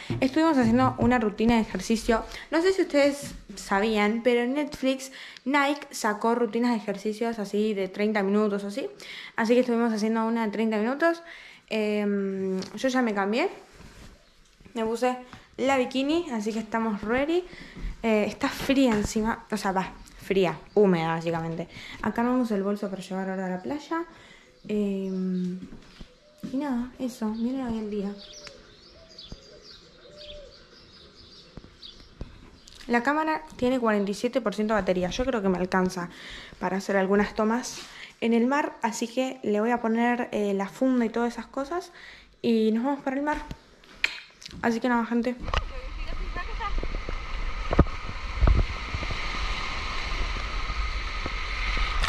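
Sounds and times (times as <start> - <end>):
small birds chirping: 14.0 - 37.5
dove cooing: 28.2 - 31.8
wind buffeting microphone: 45.4 - 52.0
small waves breaking on beach: 45.5 - 52.0.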